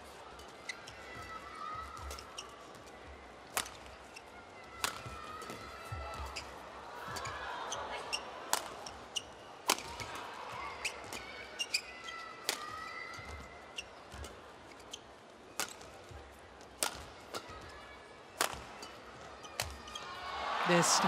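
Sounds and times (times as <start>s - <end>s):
shoes squeaking on court: 0.3s - 17.8s, 18.4s - 20.2s
rackets striking shuttlecock: 3.5s - 3.9s, 4.8s - 5.6s, 8.5s - 8.8s, 12.4s - 12.7s, 15.6s - 16.0s, 16.8s - 17.6s, 18.4s - 19.0s
arena crowd murmur: 4.3s - 11.6s, 20.1s - 21.0s.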